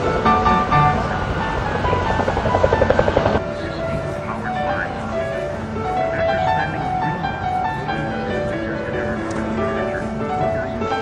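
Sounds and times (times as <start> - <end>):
background music: 0.0 - 11.0
helicopter rotor beating: 0.0 - 11.0.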